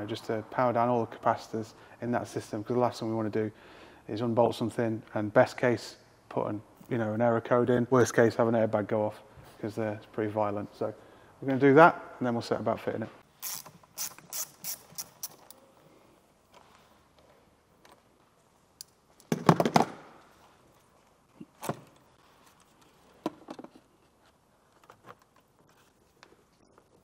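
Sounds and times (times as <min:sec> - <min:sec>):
socket ratchet clicking: 0:13.4 - 0:15.6.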